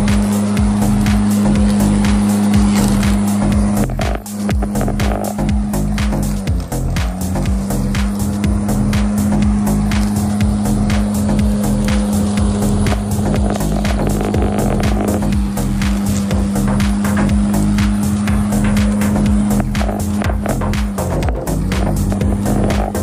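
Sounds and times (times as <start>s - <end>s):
background music with steady beat: 0.0s - 23.0s
electric lawn mower running: 0.0s - 23.0s.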